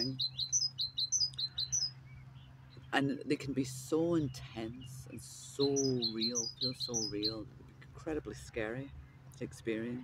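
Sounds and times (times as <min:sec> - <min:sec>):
songbird chirping: 0:00.0 - 0:10.0.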